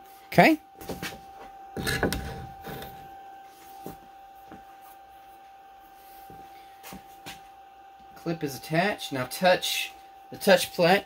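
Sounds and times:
faint steady high hum: 0.0 - 11.0.

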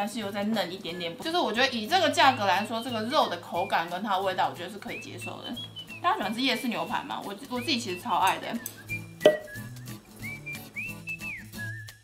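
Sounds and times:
whistled melody: 0.5 - 12.0.

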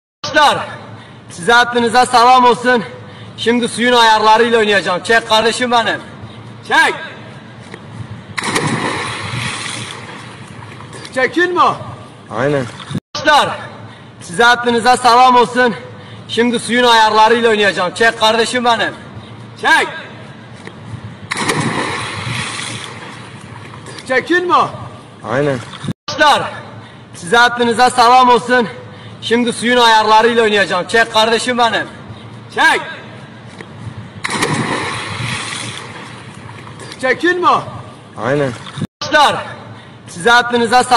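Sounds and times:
splash of diving into pool: 8.4 - 11.1, 21.3 - 24.0, 34.2 - 37.0
churning sloshing water: 8.4 - 11.2, 21.3 - 24.1, 34.2 - 37.0.

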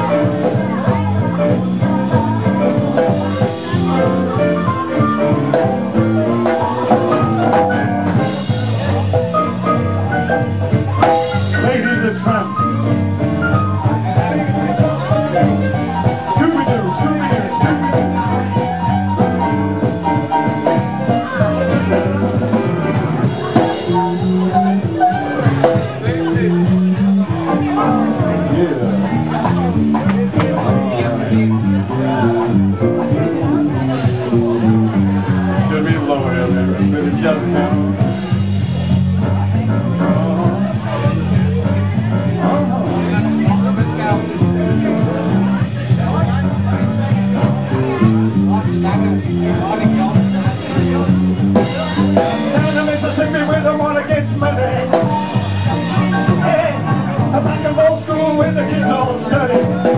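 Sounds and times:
bass line: 0.0 - 59.9
drum kit beat: 0.0 - 59.9
electric guitar: 0.0 - 59.9
keyboard: 0.0 - 59.9.

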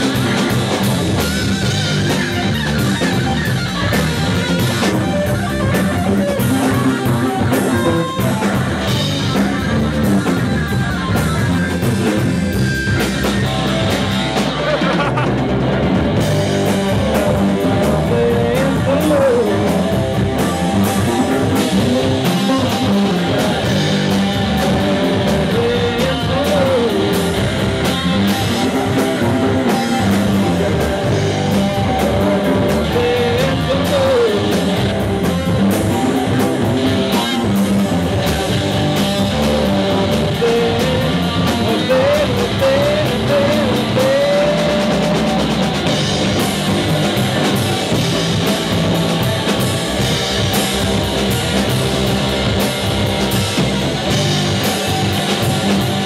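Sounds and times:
bass guitar: 0.0 - 56.0
drum kit: 0.0 - 56.0
electric guitar: 0.0 - 56.0.

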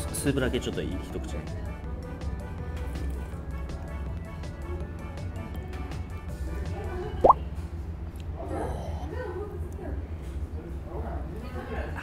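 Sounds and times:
background music: 0.0 - 7.4.

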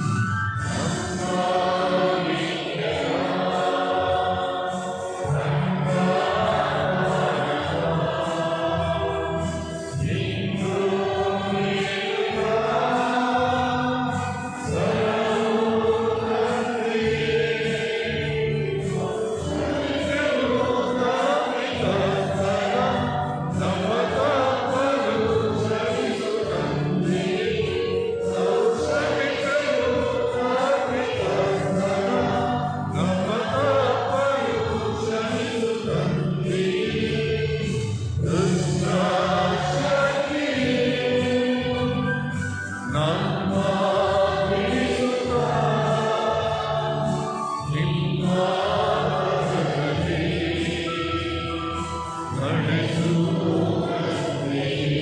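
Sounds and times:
choir singing a hymn: 0.0 - 55.0
musical accompaniment: 0.0 - 55.0.

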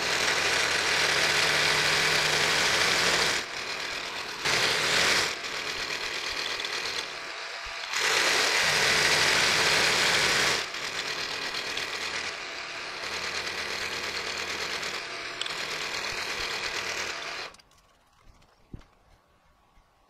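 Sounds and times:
milling machine cutting metal: 0.0 - 17.6.

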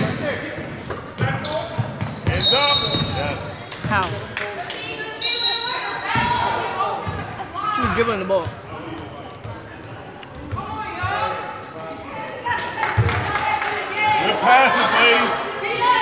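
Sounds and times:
people shouting and chatting: 0.0 - 16.0.

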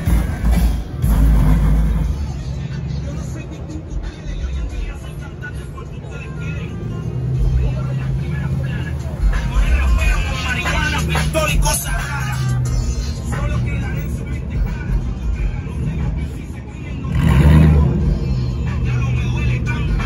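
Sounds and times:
background music: 0.0 - 20.0
car engines humming: 0.0 - 20.0
background voices: 1.8 - 20.0.

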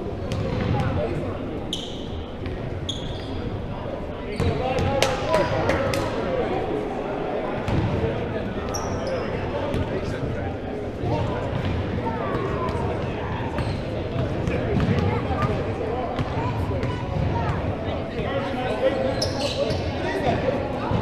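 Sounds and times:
sneakers squeaking on floor: 1.7 - 5.6, 8.6 - 9.9, 13.5 - 15.0, 19.0 - 20.4
basketball bouncing: 14.2 - 15.1.

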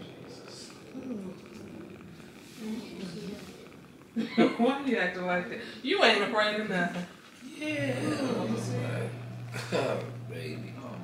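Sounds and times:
breathy hiss: 0.0 - 4.7, 5.3 - 6.0.

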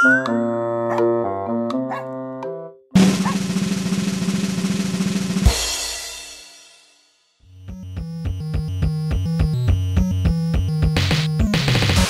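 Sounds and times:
light keyboard music: 0.0 - 3.4, 7.5 - 12.0
snare drum roll: 3.0 - 5.6.

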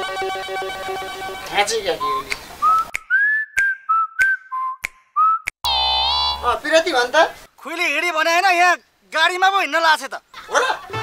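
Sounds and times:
person whistling a tune: 2.0 - 5.6
brief buzzy tone: 5.7 - 6.6.

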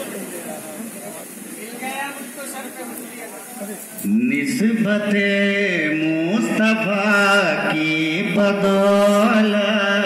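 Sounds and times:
steady high hiss: 0.0 - 10.0.

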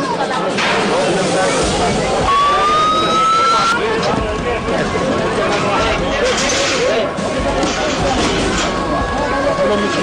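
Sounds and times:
people's voices: 0.0 - 10.0
ambulance siren rising tone: 2.2 - 4.0.

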